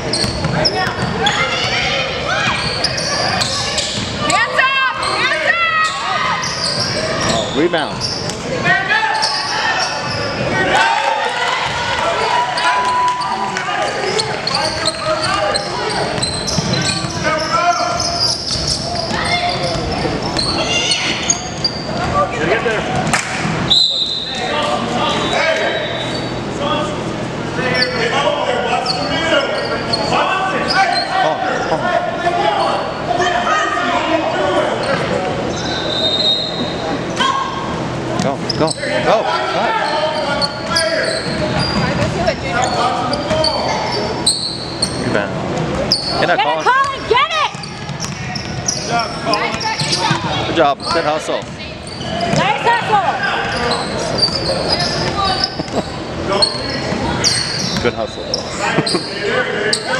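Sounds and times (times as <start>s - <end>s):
people talking and calling out: 0.0s - 59.9s.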